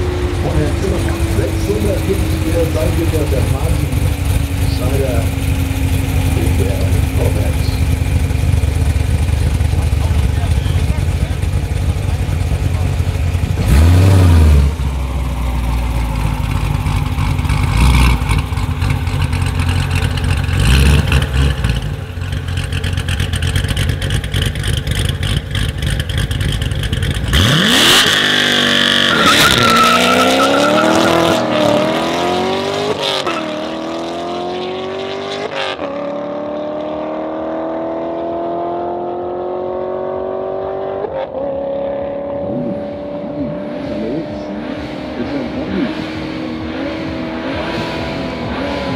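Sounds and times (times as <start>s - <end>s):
car engine revving and accelerating: 0.0s - 48.9s.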